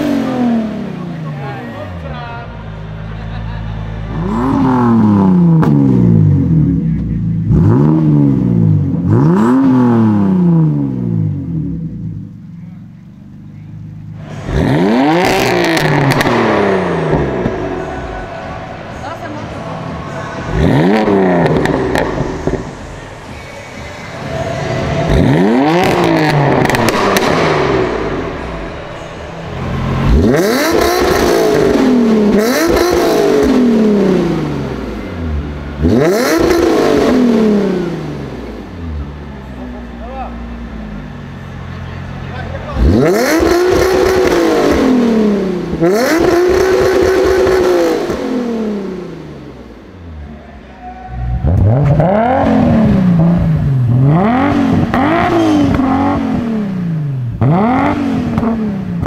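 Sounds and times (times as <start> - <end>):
sports car engine revving: 0.0 - 59.0.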